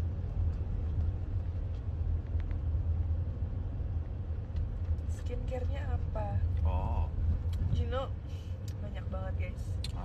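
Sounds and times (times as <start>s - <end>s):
car rumble inside cabin: 0.0s - 10.0s.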